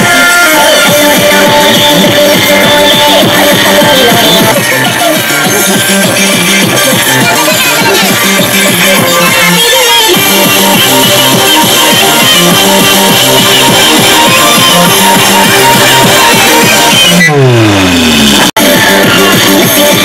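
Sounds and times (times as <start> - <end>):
electronic dance music: 0.0 - 20.0.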